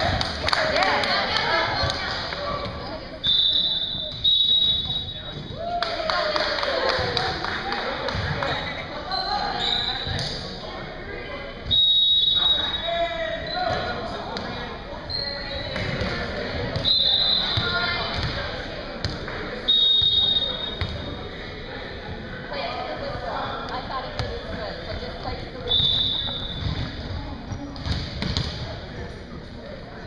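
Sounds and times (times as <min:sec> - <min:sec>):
murmur of echoing voices: 0:00.0 - 0:30.0
balls bouncing on wooden floor: 0:27.6 - 0:28.6.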